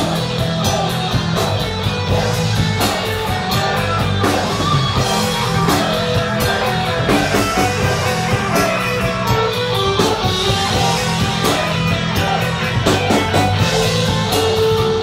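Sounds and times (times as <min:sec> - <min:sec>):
bass guitar: 0:00.0 - 0:15.0
distorted electric guitar: 0:00.0 - 0:15.0
drum kit beat: 0:00.0 - 0:15.0.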